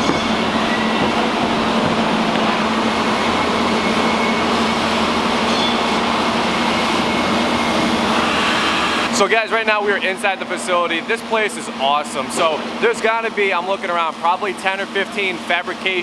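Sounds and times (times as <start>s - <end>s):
low machinery hum: 0.0s - 16.0s
ventilation fans rushing: 0.0s - 16.0s.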